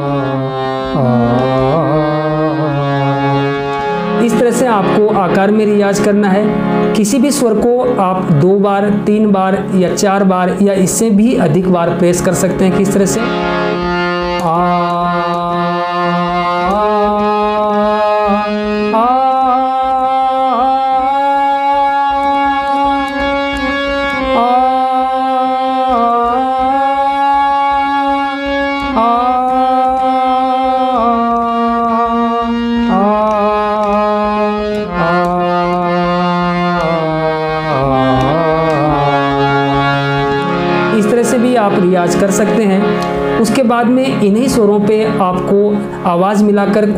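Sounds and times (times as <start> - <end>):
man singing sustained notes: 0.0 - 6.6, 13.2 - 42.6
harmonium: 0.0 - 46.9.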